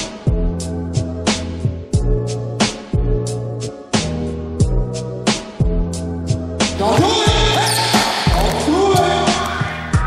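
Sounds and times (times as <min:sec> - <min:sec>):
hip hop music: 0:00.0 - 0:10.0
voice over music: 0:06.8 - 0:10.0.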